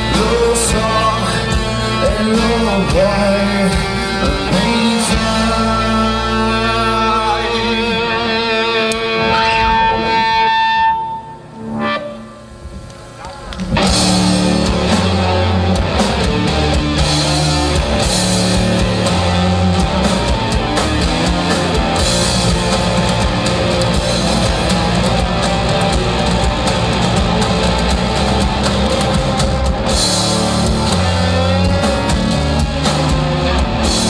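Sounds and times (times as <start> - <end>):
drum kit beat: 0.0 - 7.3, 13.7 - 34.0
electric guitar holding notes: 0.0 - 34.0
live rock band playing: 0.0 - 34.0.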